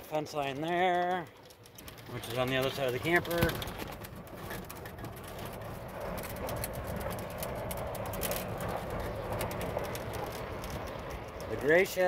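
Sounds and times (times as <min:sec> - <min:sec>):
golf cart running hum: 0:00.0 - 0:12.0
rattles and knocks: 0:00.4 - 0:11.5.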